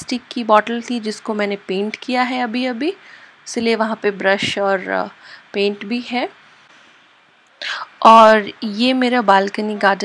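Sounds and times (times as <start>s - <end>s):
woman speaking: 0.0s - 6.4s, 7.6s - 10.0s
faint hiss: 2.8s - 8.5s.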